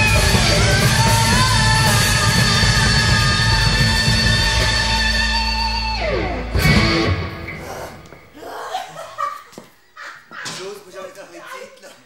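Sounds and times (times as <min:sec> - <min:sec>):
people laughing: 0:08.4 - 0:12.0.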